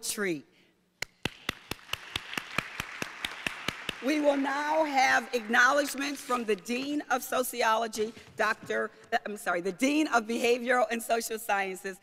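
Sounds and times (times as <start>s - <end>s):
sharp hand claps: 1.0s - 4.6s
soft applause: 1.2s - 6.0s.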